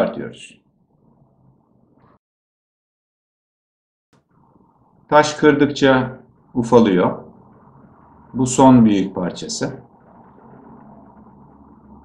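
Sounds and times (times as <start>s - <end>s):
faint low hum and hiss: 4.2s - 12.0s.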